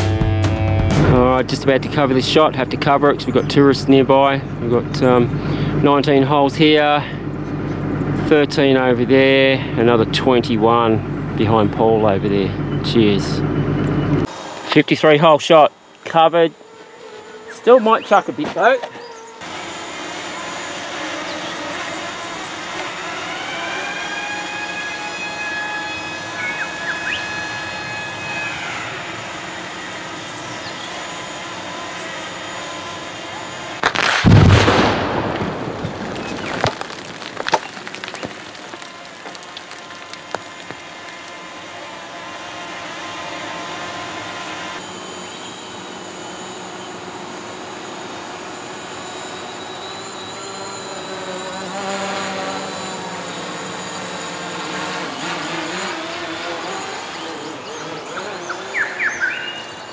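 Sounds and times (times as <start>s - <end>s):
sharp cracks: 33.8s - 41.4s
rock blast boom: 33.9s - 38.9s.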